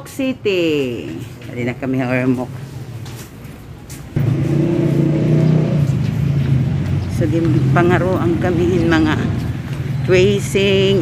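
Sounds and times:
vehicle engine running: 4.2s - 11.0s.

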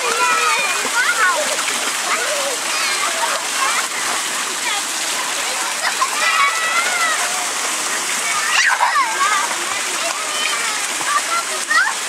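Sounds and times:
children calling out: 0.0s - 12.0s
water splashing and pouring: 0.0s - 12.0s.

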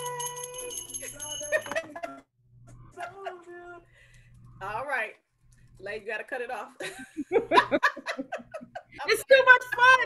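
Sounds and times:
brass hand bell ringing: 0.0s - 1.8s
people laughing: 1.6s - 3.7s, 6.8s - 9.2s.

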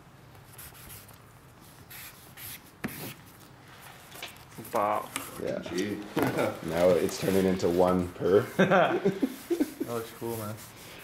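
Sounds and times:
marker scratching on cardboard: 0.5s - 3.3s.

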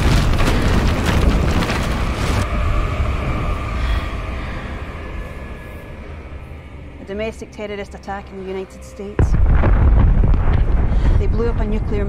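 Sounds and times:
explosion blast of wind and debris: 0.0s - 2.5s, 9.3s - 11.7s
deep rumble: 0.0s - 12.0s.

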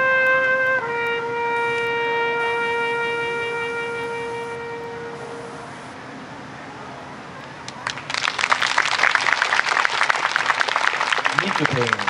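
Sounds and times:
audience applauding: 7.7s - 12.0s.

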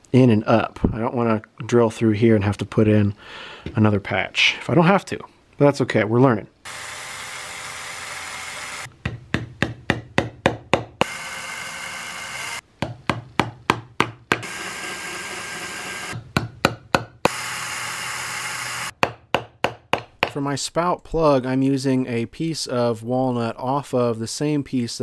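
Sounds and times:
cordless drill boring: 6.7s - 8.9s, 11.0s - 12.6s, 14.4s - 16.2s, 17.2s - 19.0s.

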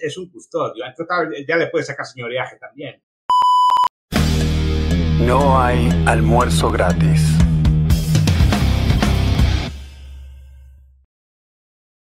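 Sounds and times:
high-pitched test-tone beep: 3.3s - 3.9s
loud intro music: 4.1s - 11.0s.

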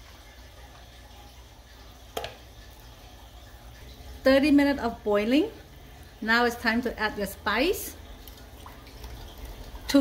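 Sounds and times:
soup bubbling: 5.4s - 10.0s.

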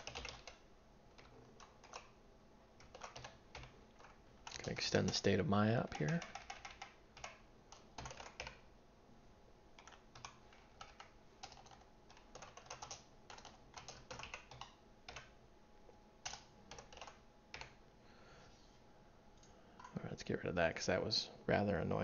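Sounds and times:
keyboard typing: 0.0s - 2.2s, 2.8s - 8.7s, 9.8s - 15.3s, 16.2s - 17.8s.

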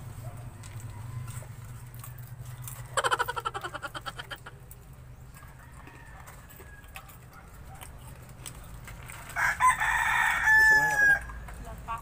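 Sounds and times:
chicken calling: 2.7s - 4.7s.

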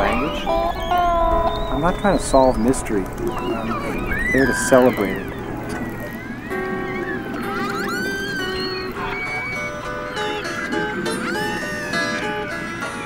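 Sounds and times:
held guitar notes: 0.0s - 13.0s
orca whistles underwater: 0.0s - 13.0s.

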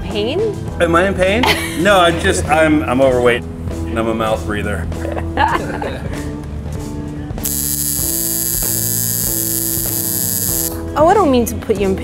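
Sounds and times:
background music: 0.0s - 12.0s
bright high hiss: 7.4s - 10.8s
tattoo machine buzzing: 7.4s - 10.9s.

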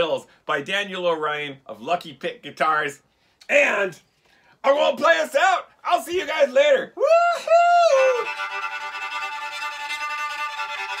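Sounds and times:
bowed violin sustained notes: 7.8s - 11.0s.

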